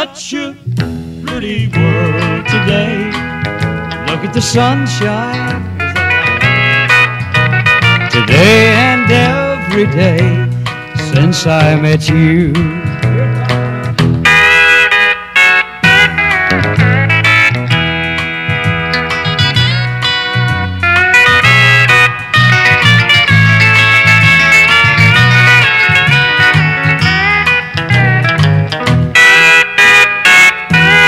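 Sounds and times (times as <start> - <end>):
rhythm guitar: 0.0 - 31.0
bass line: 0.5 - 31.0
lead guitar solo: 0.9 - 31.0.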